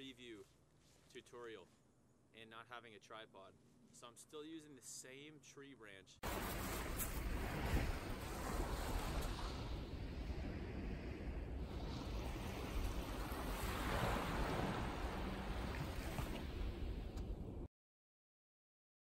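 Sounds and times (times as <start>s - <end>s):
small waves washing onto sand: 6.2s - 17.2s
wind rumble on microphone: 6.3s - 17.7s.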